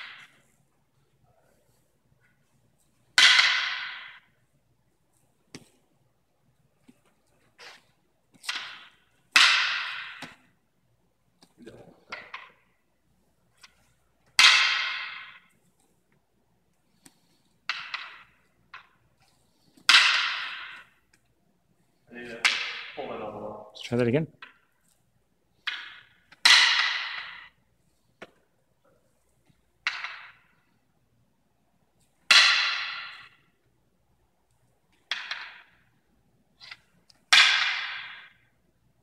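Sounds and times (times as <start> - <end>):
wooden canes clacking: 0.0 - 6.0, 6.6 - 23.1, 24.4 - 30.9, 31.9 - 38.8.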